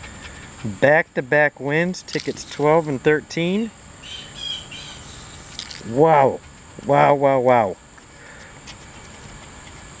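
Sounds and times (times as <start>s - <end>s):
insects droning: 0.0s - 10.0s
faint bird chirps: 4.0s - 5.4s.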